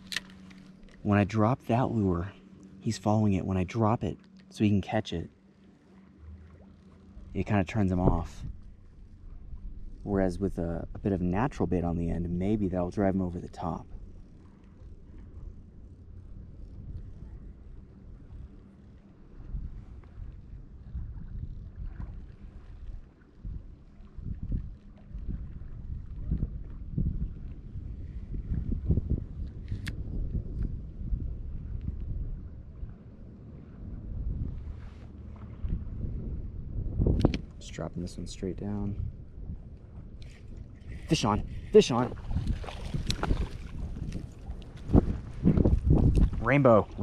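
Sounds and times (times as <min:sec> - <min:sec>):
wind buffeting microphone: 0:07.2 - 0:18.6, 0:19.2 - 0:47.0
faint clicks: 0:37.1 - 0:37.6.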